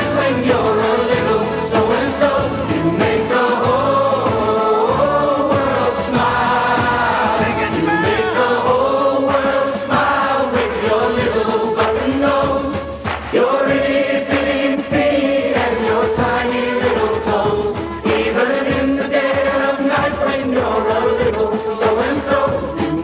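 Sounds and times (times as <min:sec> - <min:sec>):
band accompaniment: 0:00.0 - 0:23.0
group singing jingle: 0:00.0 - 0:23.0.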